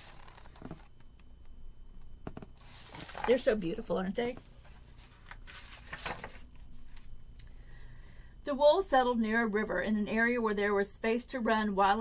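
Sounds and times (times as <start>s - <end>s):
soft taps: 2.2s - 2.5s.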